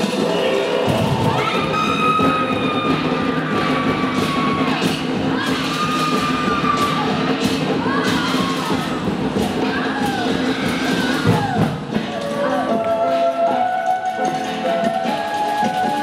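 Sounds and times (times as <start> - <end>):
crowd cheering: 0.0 - 16.0
festival music with drums: 0.0 - 16.0.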